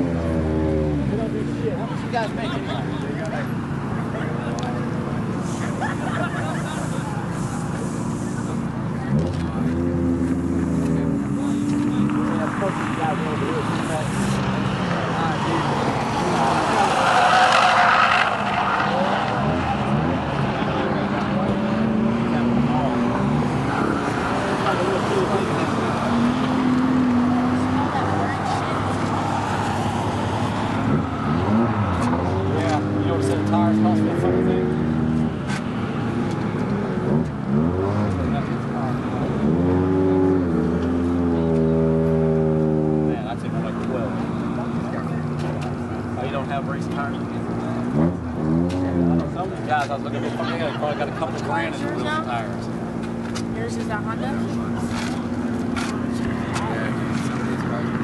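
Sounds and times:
race car engines passing: 0.0 - 58.0.

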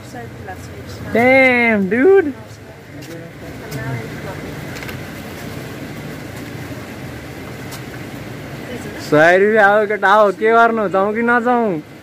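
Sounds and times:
rushing outdoor background noise: 0.0 - 12.0.

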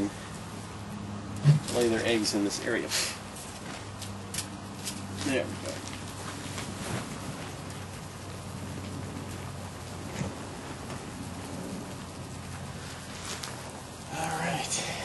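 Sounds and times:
outdoor background hiss: 0.0 - 15.0.

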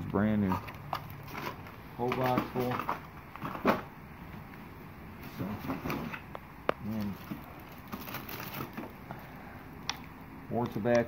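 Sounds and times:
cardboard rustling: 0.4 - 4.4, 5.1 - 9.1.

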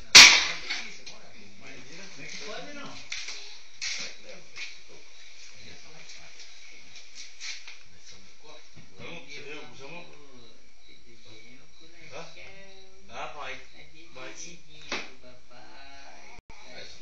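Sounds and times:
sharp loud crack: 0.0 - 0.8
distant voices: 0.0 - 17.0.

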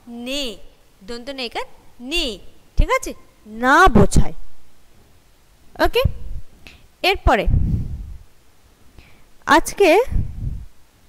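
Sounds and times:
woman speaking: 0.0 - 4.4, 5.8 - 6.3, 7.0 - 7.6, 9.5 - 10.2.

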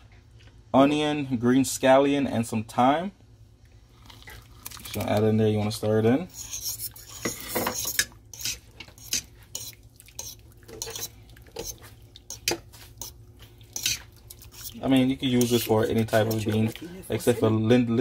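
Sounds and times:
spoon stirring in metal pot: 4.7 - 17.4.

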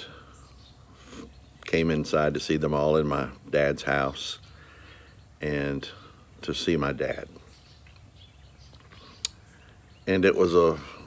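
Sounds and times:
faint outdoor background noise: 0.0 - 11.0.

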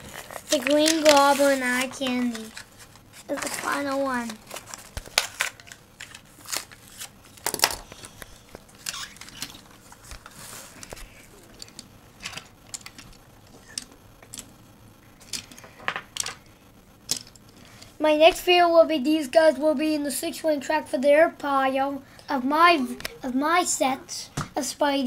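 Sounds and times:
plastic and cardboard crinkling: 0.0 - 13.9.

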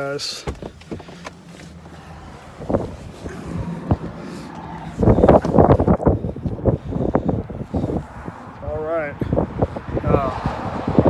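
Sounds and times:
wind buffeting microphone: 0.6 - 11.0.

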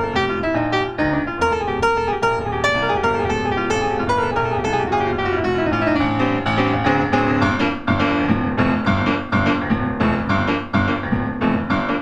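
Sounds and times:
grand piano playing: 0.0 - 12.0.

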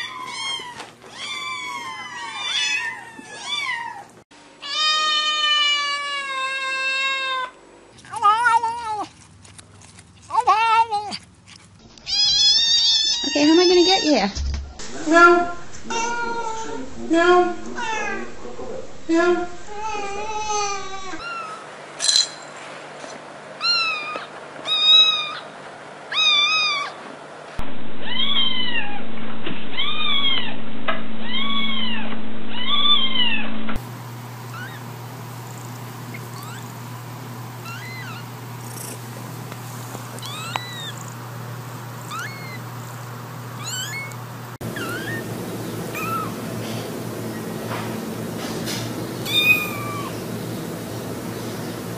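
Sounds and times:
cat meowing: 0.0 - 7.5, 12.1 - 14.1, 23.6 - 25.4, 26.1 - 27.0, 28.0 - 29.0, 36.3 - 36.7, 37.6 - 38.3, 40.2 - 41.1, 42.0 - 42.6, 43.6 - 44.2, 44.8 - 45.3, 45.9 - 46.4, 49.3 - 50.2
newborn kitten crying: 0.0 - 7.5, 12.1 - 14.2, 23.6 - 25.4, 26.1 - 27.0, 28.0 - 29.0, 31.2 - 33.3, 34.5 - 34.8, 36.3 - 36.7, 37.6 - 38.3, 40.2 - 41.1, 42.0 - 42.6, 43.6 - 44.2, 44.8 - 45.3, 45.9 - 46.3, 49.3 - 50.2
steady hum: 14.2 - 21.2, 32.0 - 51.9.

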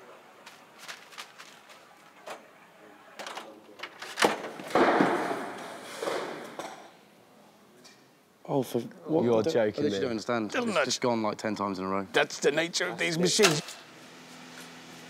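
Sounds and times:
loud rustling rush: 0.4 - 2.1.

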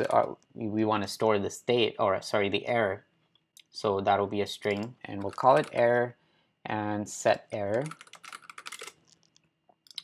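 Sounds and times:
computer keyboard typing: 0.0 - 0.4, 4.6 - 6.0, 7.6 - 10.0.

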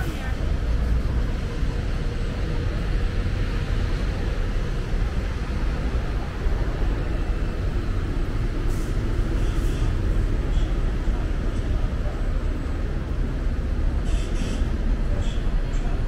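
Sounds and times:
street traffic rumble: 0.0 - 16.0.

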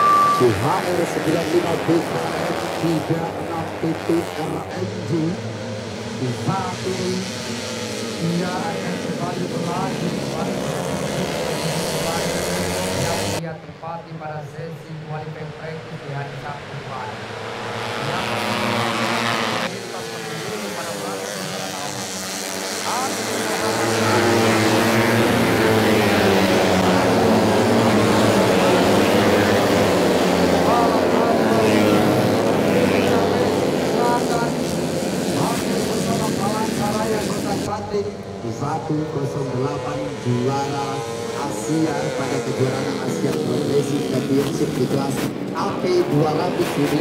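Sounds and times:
racing motorcycles revving past: 0.0 - 13.4, 17.0 - 47.0.

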